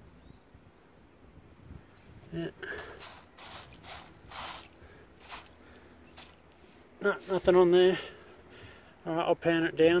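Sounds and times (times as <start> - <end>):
gravel raked across wire mesh: 2.6 - 7.6.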